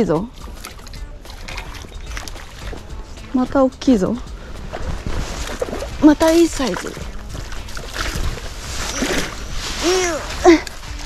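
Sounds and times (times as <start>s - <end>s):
fish splashing at water surface: 0.3s - 3.0s, 4.3s - 11.0s
woman straining vocal sounds: 9.8s - 10.8s.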